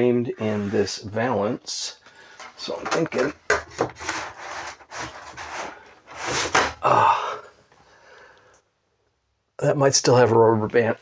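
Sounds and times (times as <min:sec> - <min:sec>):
man uttering: 0:06.8 - 0:07.5.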